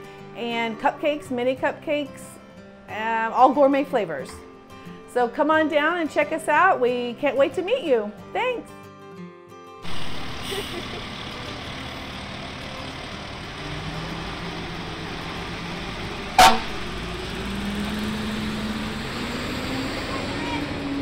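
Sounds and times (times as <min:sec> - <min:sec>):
diesel engine pulling away: 0:09.8 - 0:21.0
fire engine horn toot: 0:16.3 - 0:17.1.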